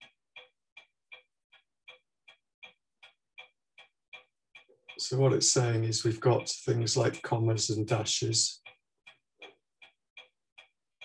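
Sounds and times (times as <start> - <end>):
faint mechanical ticking: 0.0 - 11.0.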